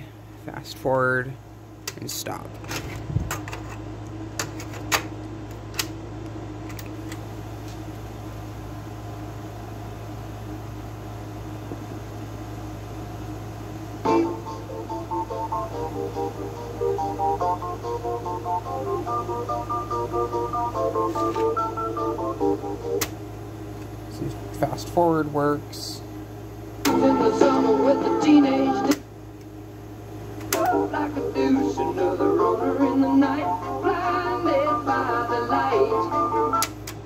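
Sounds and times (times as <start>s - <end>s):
low steady hum: 0.0s - 37.0s
song playing from speakers: 26.9s - 29.0s.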